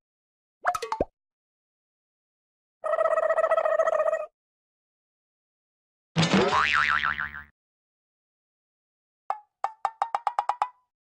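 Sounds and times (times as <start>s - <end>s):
cartoon spring boing: 6.2s - 7.5s.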